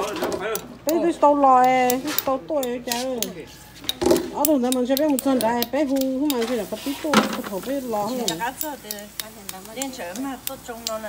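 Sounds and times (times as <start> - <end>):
voices talking: 0.0 - 11.0
metal spoons clicking on shells: 0.5 - 6.6, 7.8 - 11.0.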